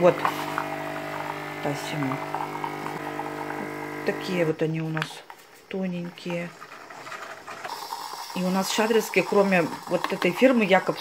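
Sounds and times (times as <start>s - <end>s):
coffee machine pump humming: 0.0s - 5.1s, 5.9s - 11.0s.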